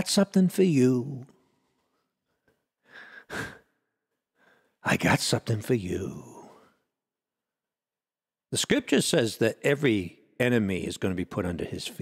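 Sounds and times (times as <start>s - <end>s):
man speaking: 0.0s - 1.3s, 4.8s - 6.7s, 8.5s - 12.0s
man sighing into microphone: 2.9s - 3.7s.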